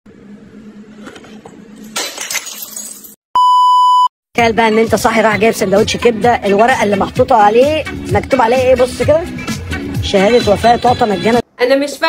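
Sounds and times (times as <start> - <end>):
test tone beep: 3.4 - 4.1
noisy audio: 4.4 - 12.0.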